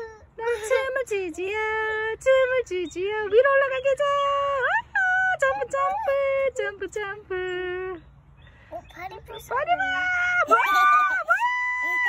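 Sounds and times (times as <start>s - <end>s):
high-pitched playful voice: 5.4s - 6.3s.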